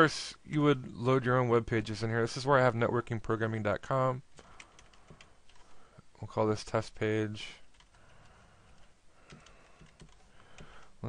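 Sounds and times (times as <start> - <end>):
faint keyboard keystrokes: 4.4 - 5.7, 7.7 - 10.9.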